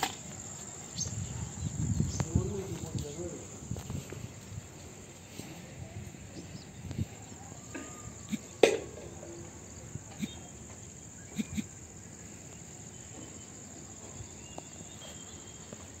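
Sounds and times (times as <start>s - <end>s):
insects chirring: 0.0s - 16.0s.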